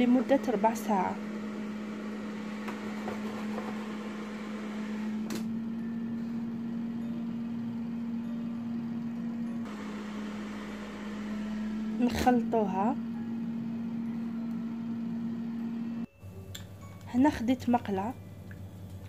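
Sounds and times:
air fryer fan humming: 0.0s - 17.0s.

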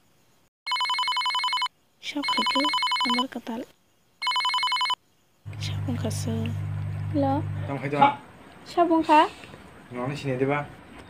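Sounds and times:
telephone bell ringtone: 0.7s - 3.3s, 4.2s - 5.0s
person speaking: 5.5s - 7.8s
steady low hum: 5.5s - 8.0s.

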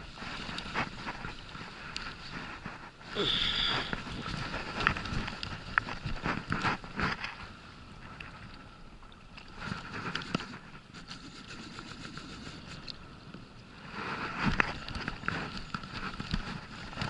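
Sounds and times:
water noise: 0.0s - 17.0s
wind: 0.0s - 17.0s.

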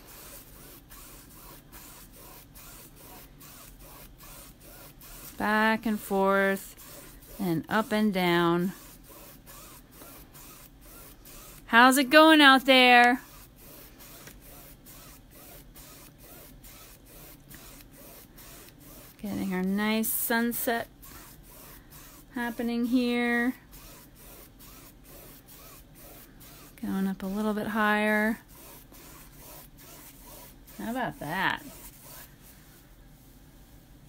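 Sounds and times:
paintbrush scrubbing on canvas: 0.0s - 33.5s.

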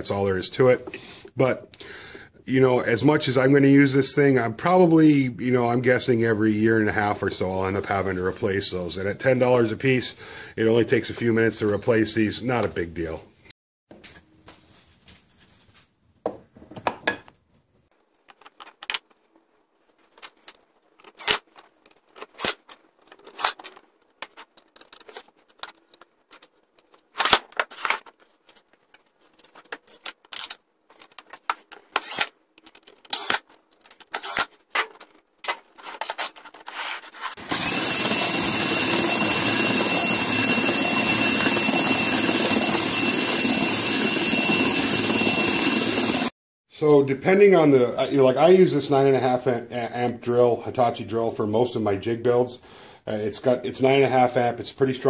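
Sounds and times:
cordless drill driving screws: 31.9s - 32.3s, 33.1s - 33.4s, 37.4s - 46.3s
loud power tool running: 37.4s - 46.3s.

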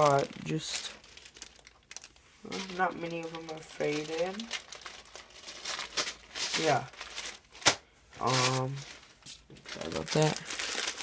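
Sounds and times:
plastic pieces clattering in bag: 0.0s - 9.1s, 9.7s - 11.0s.

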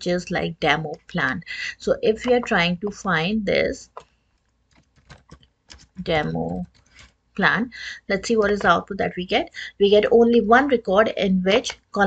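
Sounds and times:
faint typing on computer keyboard: 3.8s - 8.9s.

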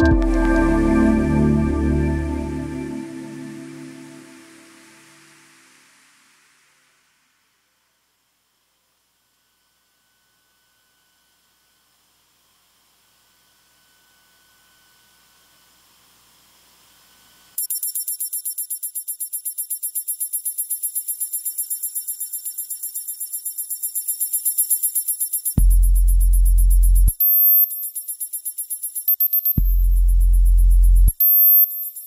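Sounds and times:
faint high hiss: 0.0s - 8.9s
pulsing high-pitched synth beeping: 17.6s - 32.0s.

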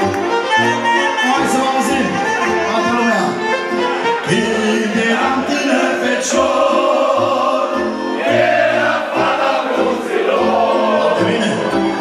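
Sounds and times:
keyboard accompaniment: 0.0s - 12.0s
men singing in chorus: 4.3s - 12.0s.

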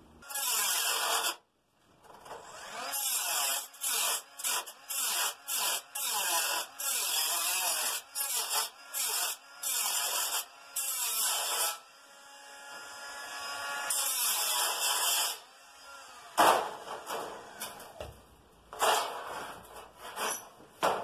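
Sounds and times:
angle grinder cutting sheet steel: 0.2s - 1.4s, 2.5s - 17.9s.

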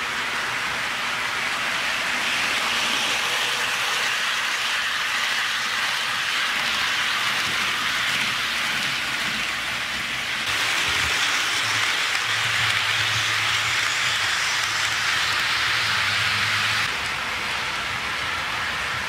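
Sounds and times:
model train wheels hissing on rails: 0.0s - 19.0s.

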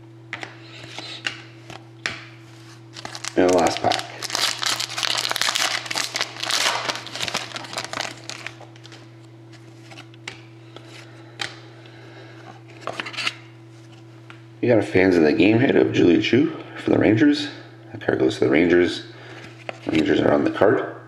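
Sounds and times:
steady low hum: 0.0s - 21.0s
foil pack tearing and crinkling: 2.9s - 9.0s.

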